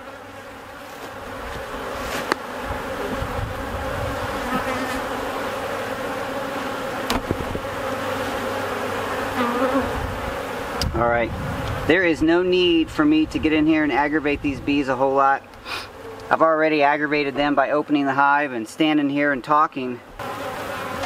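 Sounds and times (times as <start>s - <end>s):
bees buzzing: 0.0s - 21.0s.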